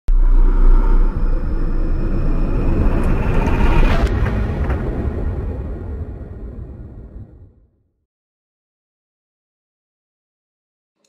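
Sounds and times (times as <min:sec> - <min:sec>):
deep cinematic rumble: 0:00.1 - 0:07.8.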